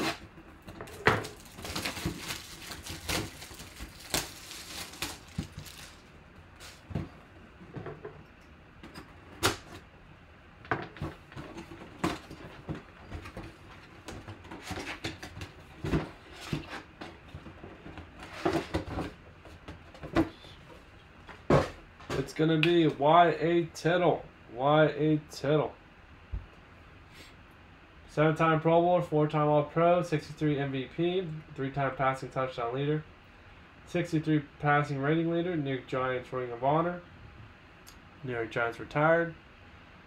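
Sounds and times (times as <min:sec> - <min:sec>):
cardboard packaging rustling: 0:00.0 - 0:07.2, 0:11.0 - 0:19.1.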